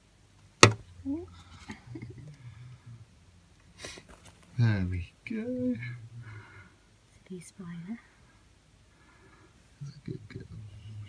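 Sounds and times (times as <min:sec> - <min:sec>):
person whispering: 0:09.8 - 0:11.0.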